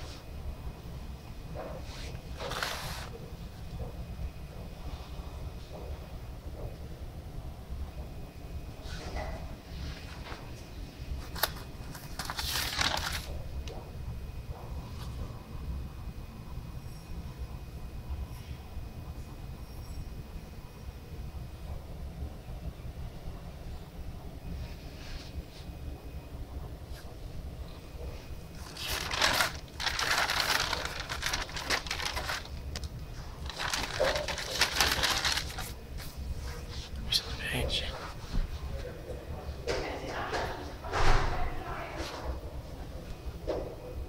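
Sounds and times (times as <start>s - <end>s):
paper rustling: 1.8s - 3.2s, 11.2s - 13.4s, 28.5s - 36.6s.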